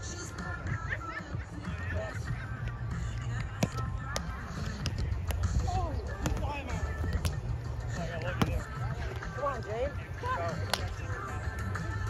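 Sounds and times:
players' voices: 0.0 - 12.0
balls being hit: 3.0 - 9.4, 10.6 - 11.0.

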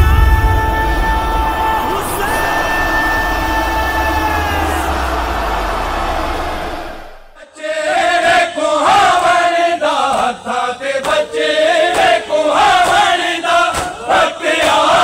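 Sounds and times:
person chanting a lament: 0.0 - 6.3
deep rumbling sustained tones: 0.0 - 7.4.

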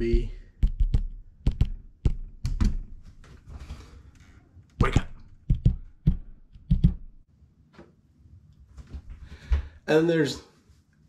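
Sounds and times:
fingers tapping on phone: 0.1 - 2.6.

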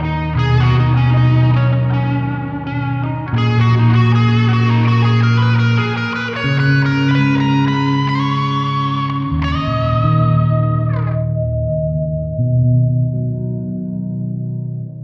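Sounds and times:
bass notes: 0.0 - 15.0
electric guitar chords with effects: 0.0 - 15.0.

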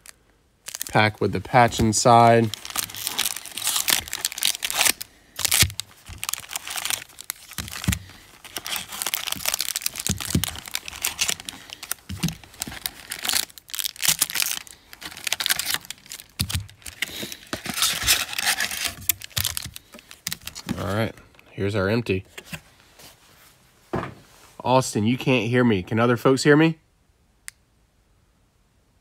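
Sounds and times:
foil packs crinkling: 0.0 - 21.0.

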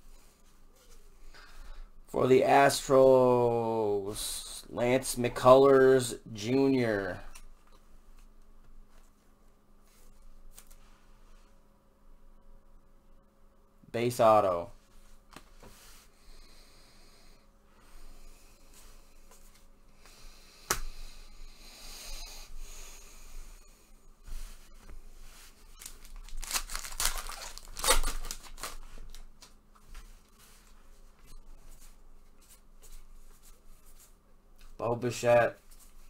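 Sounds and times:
wrapper and cards rustling: 24.4 - 34.1
wrapper ripping: 25.8 - 29.2.

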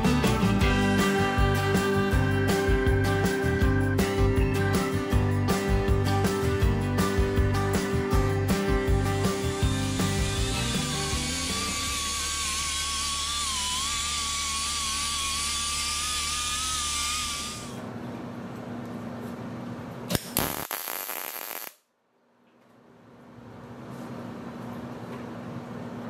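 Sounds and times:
background music: 0.0 - 12.0
die grinder on steel: 9.2 - 17.8.

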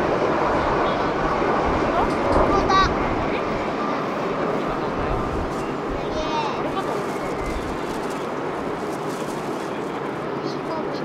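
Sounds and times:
jet engines at takeoff thrust: 0.0 - 11.0.

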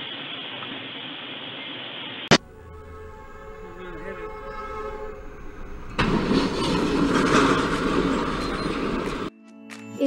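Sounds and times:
loud rushing of train: 2.3 - 9.3
train crashing into car: 2.3 - 9.3.

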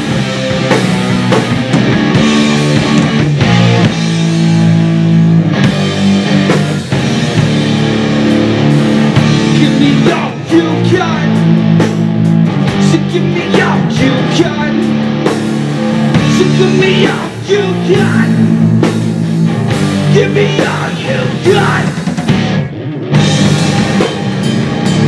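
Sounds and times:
drum kit: 0.0 - 25.0
electric bass: 0.0 - 25.0
electric guitars: 0.0 - 25.0.

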